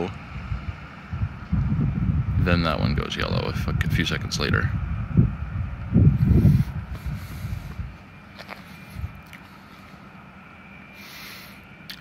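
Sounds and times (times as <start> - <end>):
faint high hum: 0.0 - 12.0
low gusty rumble: 0.0 - 12.0.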